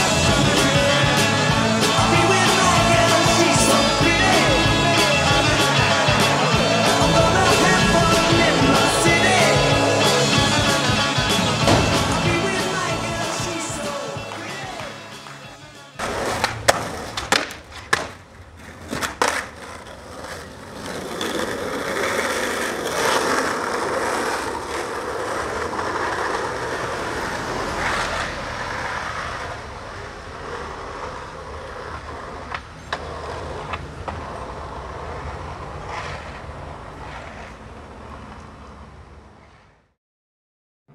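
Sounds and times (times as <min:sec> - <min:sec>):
skateboard wheels rolling on asphalt: 0:00.0 - 0:40.0
sharp knocks: 0:11.6 - 0:12.2.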